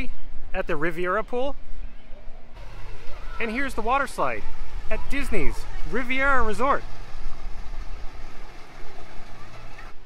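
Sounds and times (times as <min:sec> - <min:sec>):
steady low hum: 0:01.6 - 0:10.0
water gushing into pool: 0:02.6 - 0:10.0.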